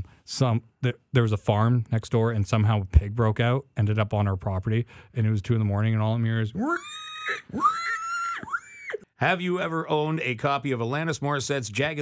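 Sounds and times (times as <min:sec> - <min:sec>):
man imitating pig squeals: 0:06.5 - 0:09.1.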